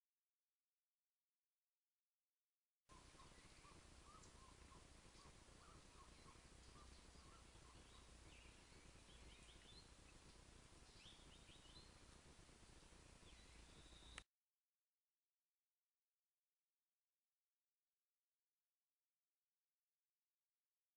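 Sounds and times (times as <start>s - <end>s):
birds chirping: 2.9s - 14.2s.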